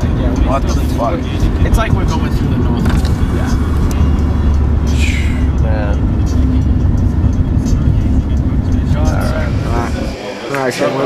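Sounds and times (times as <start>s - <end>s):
car engine and tyres rumbling: 0.0s - 10.5s
voices: 0.0s - 11.0s.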